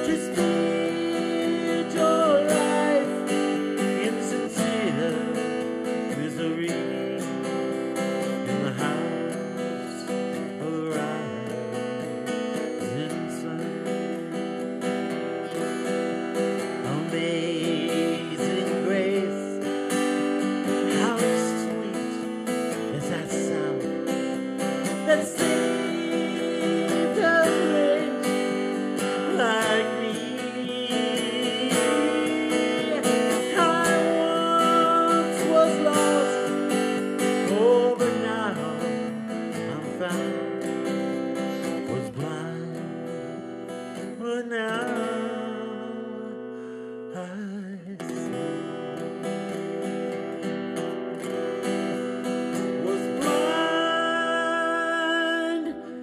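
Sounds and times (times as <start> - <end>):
man singing: 0.0 - 50.4, 51.3 - 56.0
acoustic guitar strumming: 0.0 - 56.0.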